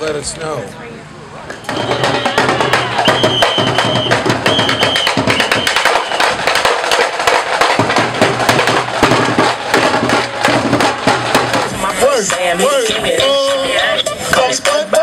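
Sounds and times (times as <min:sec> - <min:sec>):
whistle blasts: 0:01.5 - 0:06.6
marching drum cadence: 0:01.5 - 0:15.0.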